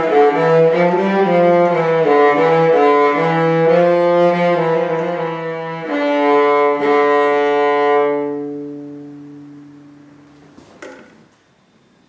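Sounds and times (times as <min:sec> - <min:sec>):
solo cello bowed: 0:00.0 - 0:10.2
short knock: 0:10.5 - 0:11.2.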